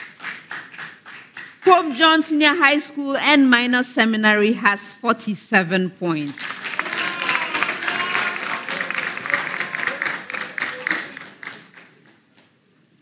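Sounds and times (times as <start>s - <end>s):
audience clapping and cheering: 0.0s - 1.7s, 6.3s - 12.5s.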